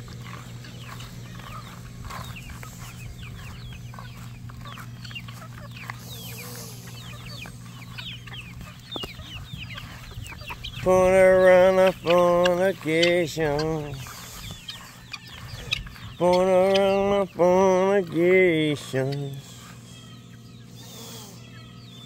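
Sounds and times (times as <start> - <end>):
chickens clucking and chirping: 0.0 - 22.0
steady low hum: 0.0 - 22.0.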